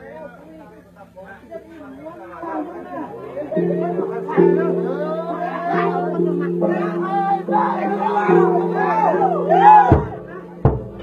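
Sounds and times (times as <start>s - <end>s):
voices over dance music: 0.0s - 10.8s.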